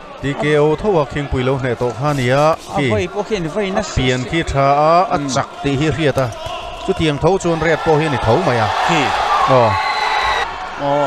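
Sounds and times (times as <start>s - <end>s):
man commenting rapidly: 2.0s - 4.5s.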